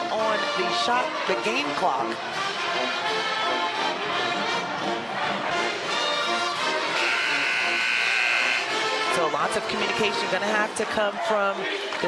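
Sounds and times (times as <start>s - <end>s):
brass band music: 0.0s - 10.8s
long held buzzy chord: 6.9s - 8.9s.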